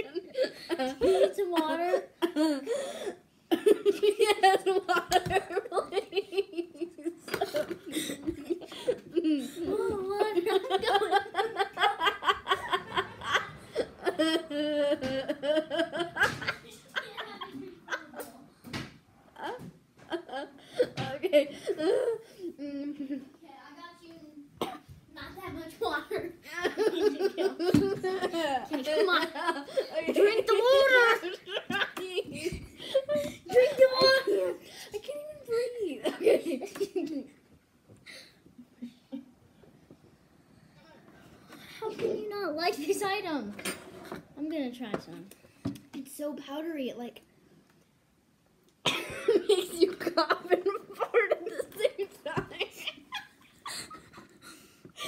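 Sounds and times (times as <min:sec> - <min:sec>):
children laughing: 0:00.0 - 0:18.6, 0:19.2 - 0:23.4, 0:25.8 - 0:37.5, 0:48.8 - 0:55.0
girl coughing: 0:24.6 - 0:24.9, 0:48.8 - 0:49.5.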